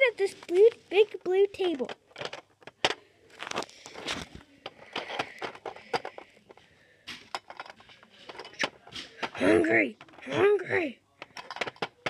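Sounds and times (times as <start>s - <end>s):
soft handling rustle: 0.0s - 9.4s
plastic toy pieces clicking on wood: 11.2s - 12.0s.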